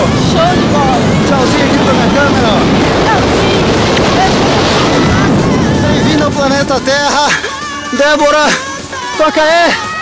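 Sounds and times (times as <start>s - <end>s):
wind rushing over microphone: 0.0s - 8.9s.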